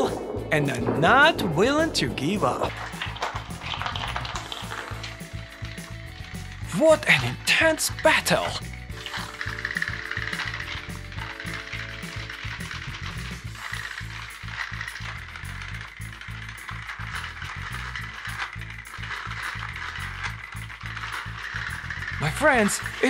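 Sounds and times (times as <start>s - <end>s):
background music: 0.0s - 23.0s
toy train motors whirring: 1.8s - 23.0s.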